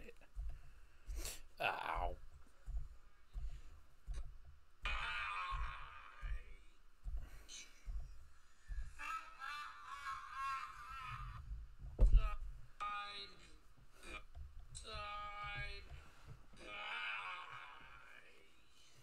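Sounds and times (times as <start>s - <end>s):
low thuds: 0.0s - 9.4s, 10.9s - 13.0s, 13.6s - 16.6s.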